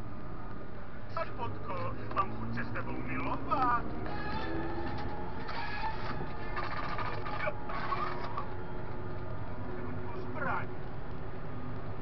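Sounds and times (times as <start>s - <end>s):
tractor engine droning: 1.1s - 11.8s.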